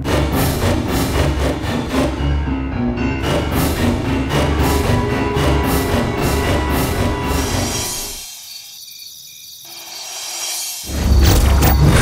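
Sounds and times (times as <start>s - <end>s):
music: 0.0s - 8.3s, 9.8s - 12.0s
crickets chirping: 7.4s - 12.0s.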